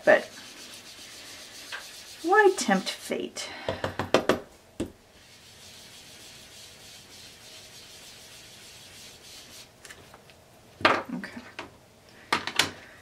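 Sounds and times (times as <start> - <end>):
sponge rubbing on cardstock: 0.0 - 3.1, 5.2 - 9.8.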